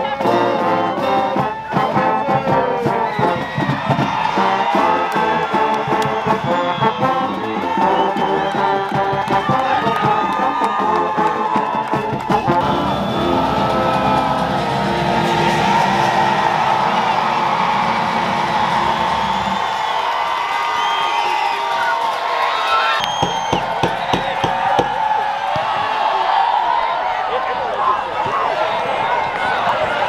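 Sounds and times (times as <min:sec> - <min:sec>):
music playing: 0:00.0 - 0:20.1
crowd cheering and shouting: 0:00.0 - 0:30.0
sharp knocks: 0:23.2 - 0:25.6.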